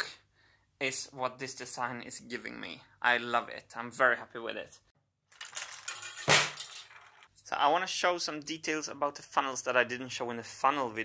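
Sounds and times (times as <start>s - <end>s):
metal marbles clinking and rattling: 5.3s - 7.3s.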